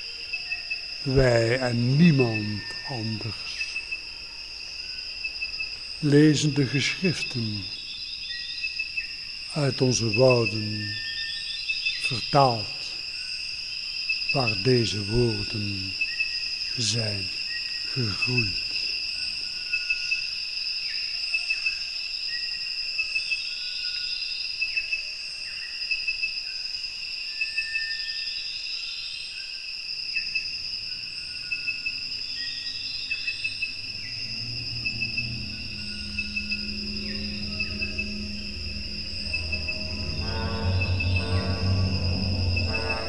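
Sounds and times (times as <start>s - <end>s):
insects chirping with pulsing trill: 0.0s - 43.0s
short insect calls: 0.0s - 43.0s
low dark music notes: 31.3s - 43.0s.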